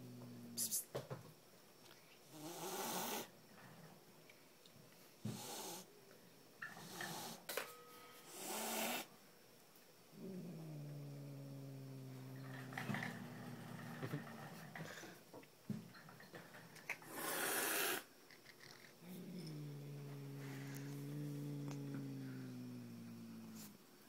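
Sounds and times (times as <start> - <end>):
cat growling: 0.0 - 0.8, 10.1 - 15.2, 16.9 - 23.9
cat hissing: 2.3 - 3.3, 5.3 - 5.9, 8.3 - 9.1, 17.0 - 18.1, 19.0 - 23.8.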